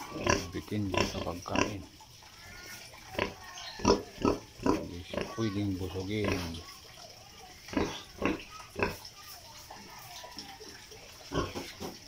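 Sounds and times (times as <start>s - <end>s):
pig grunting: 0.0s - 1.9s, 2.6s - 6.6s.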